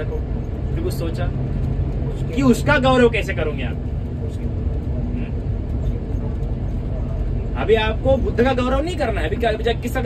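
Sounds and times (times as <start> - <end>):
bus engine rumble: 0.0 - 10.0
road noise: 0.0 - 10.0.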